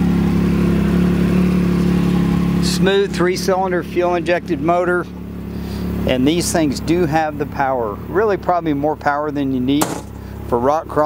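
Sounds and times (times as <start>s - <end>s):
engine idling steadily: 0.0s - 11.0s.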